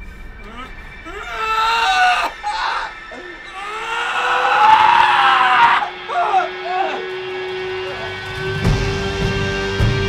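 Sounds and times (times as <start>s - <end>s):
woman screaming: 0.5s - 7.1s.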